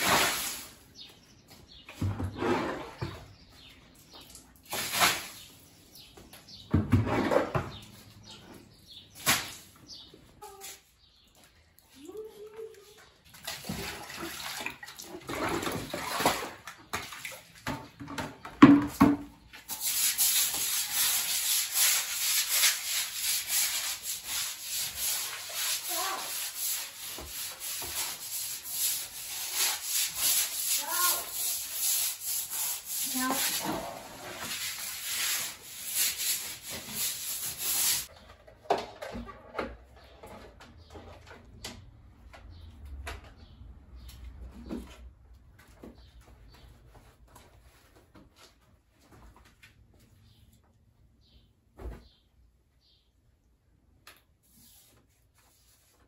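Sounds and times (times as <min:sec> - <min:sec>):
broom scrubbing wet floor: 0:00.0 - 0:06.1, 0:19.4 - 0:38.1
knocks and scrapes: 0:01.5 - 0:05.4, 0:06.1 - 0:10.8, 0:15.2 - 0:49.5.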